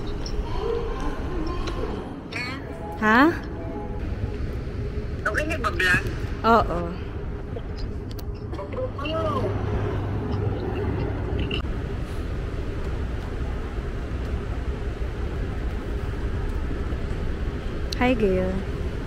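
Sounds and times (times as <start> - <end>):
moving walkway rumble and hiss: 0.0 - 19.0
terminal background noise: 0.0 - 19.0.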